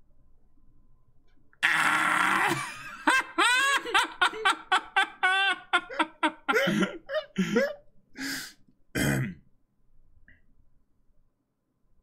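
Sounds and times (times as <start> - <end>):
men laughing loudly: 1.6 - 7.8.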